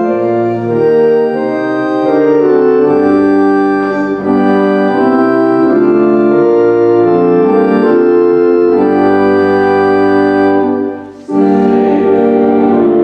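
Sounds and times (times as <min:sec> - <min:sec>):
church organ playing hymn chords: 0:00.0 - 0:13.0.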